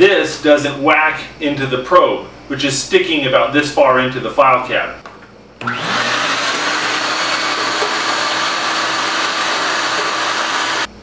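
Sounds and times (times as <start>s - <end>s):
shop vacuum motor whining: 5.6s - 10.9s.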